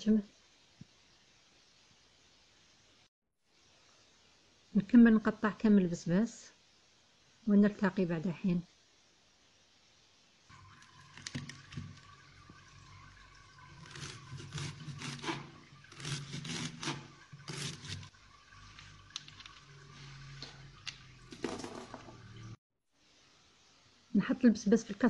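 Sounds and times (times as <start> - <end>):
knife cutting fennel on board: 13.8 - 18.1.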